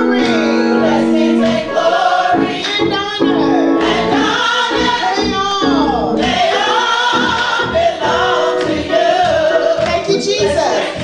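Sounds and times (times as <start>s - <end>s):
gospel choir singing: 0.0s - 11.0s.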